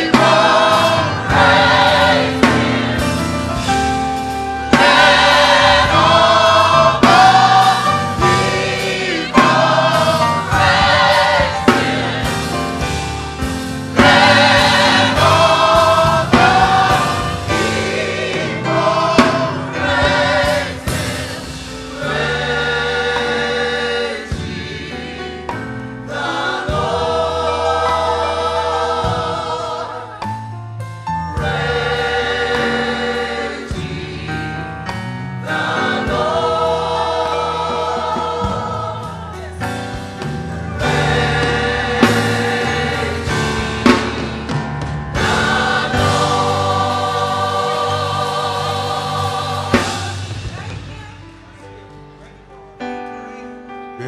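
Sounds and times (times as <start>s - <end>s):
choir singing gospel song: 0.0s - 51.0s.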